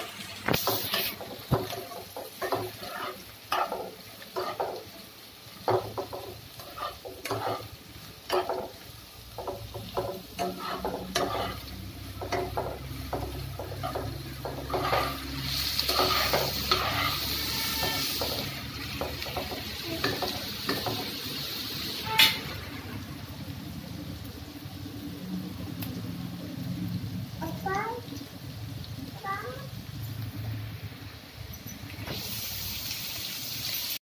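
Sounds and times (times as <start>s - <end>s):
vegetables sizzling in oil: 0.0s - 34.0s
spatula scraping a pan: 0.5s - 4.9s, 5.7s - 8.8s, 9.4s - 21.0s.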